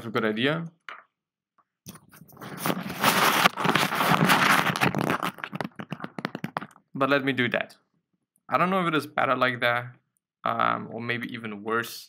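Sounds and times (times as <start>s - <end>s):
tissue rustling against microphone: 1.9s - 6.7s.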